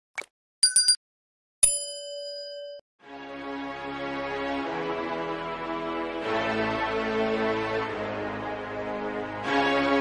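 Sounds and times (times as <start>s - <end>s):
bell ding: 0.6s - 1.0s, 1.6s - 2.8s.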